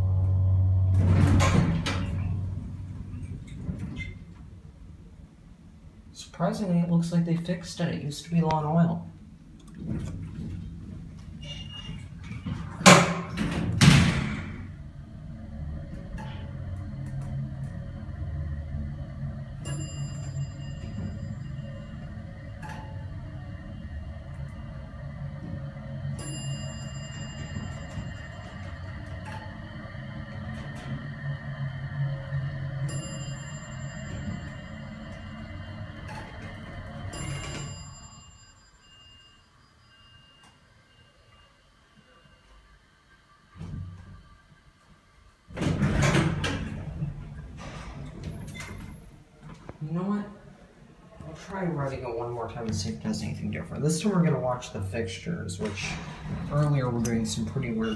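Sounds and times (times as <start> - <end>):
elevator running hum: 0.0 - 57.9
elevator floor chime: 14.7 - 42.8.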